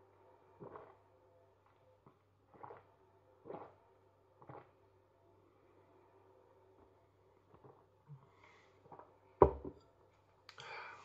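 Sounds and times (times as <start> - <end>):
glass knocking on worktop: 9.4 - 9.8.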